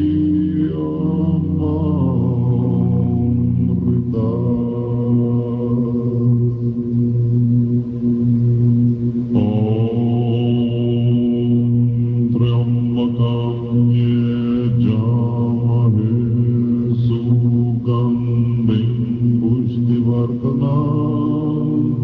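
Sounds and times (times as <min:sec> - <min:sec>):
low voices chanting prayers: 0:00.0 - 0:22.0.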